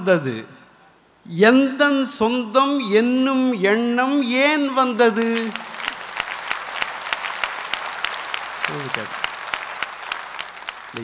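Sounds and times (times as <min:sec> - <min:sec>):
audience applauding: 0:05.2 - 0:11.0.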